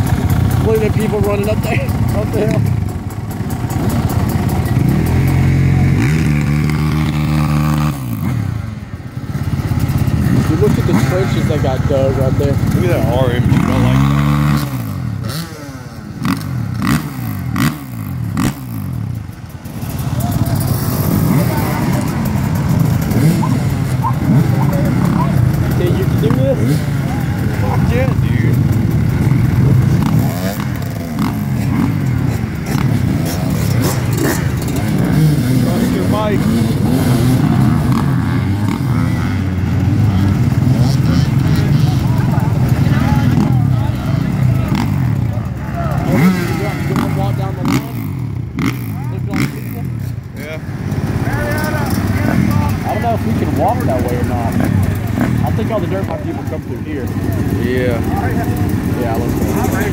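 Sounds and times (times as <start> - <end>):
dirt bike engines idling and revving: 0.0 - 59.9.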